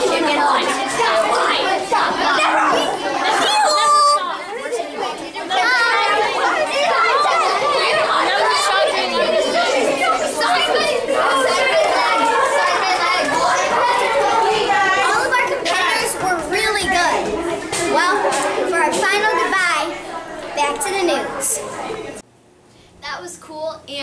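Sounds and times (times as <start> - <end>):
children chattering: 0.0 - 22.2
high child voice: 2.2 - 4.4.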